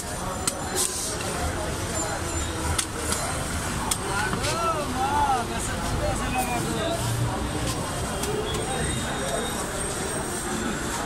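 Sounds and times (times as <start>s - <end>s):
crowd murmur: 0.0s - 11.0s
low traffic rumble: 0.0s - 11.0s.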